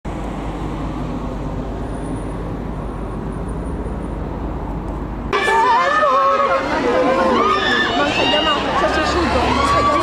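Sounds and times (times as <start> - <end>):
hum of cars on road: 0.0 - 10.0.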